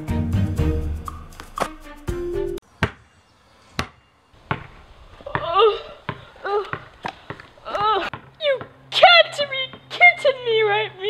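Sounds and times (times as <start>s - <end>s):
basketball bouncing on concrete: 2.8s - 3.0s, 3.8s - 8.8s, 9.7s - 10.0s
boy wailing: 5.3s - 6.8s, 7.6s - 9.4s.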